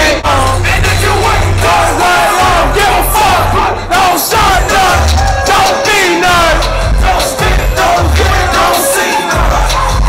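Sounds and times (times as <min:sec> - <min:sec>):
deep bass line: 0:00.0 - 0:10.0
loud live rap music: 0:00.0 - 0:10.0
crowd yelling: 0:00.4 - 0:10.0.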